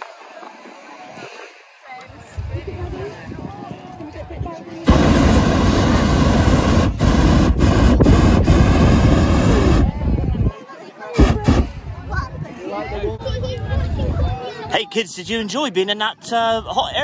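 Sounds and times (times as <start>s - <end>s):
propane burner blast: 4.8s - 10.4s, 11.2s - 12.0s.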